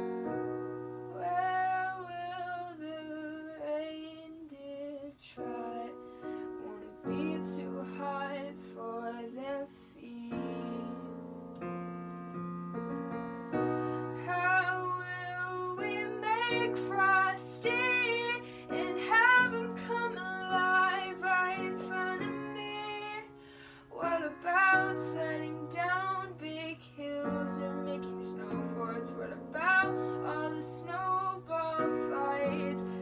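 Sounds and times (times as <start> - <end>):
digital piano chords: 0.0 - 3.5, 5.4 - 33.0
woman singing with vibrato: 6.6 - 11.2, 14.0 - 33.0.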